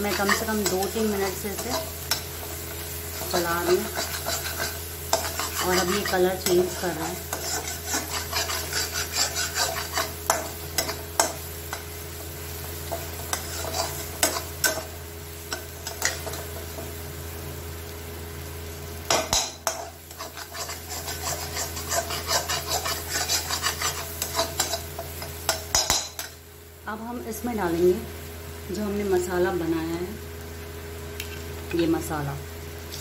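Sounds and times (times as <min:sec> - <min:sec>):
metal spatula scraping a pan: 0:00.0 - 0:11.8, 0:12.9 - 0:14.9, 0:19.3 - 0:26.3
steady low hum: 0:00.0 - 0:30.4.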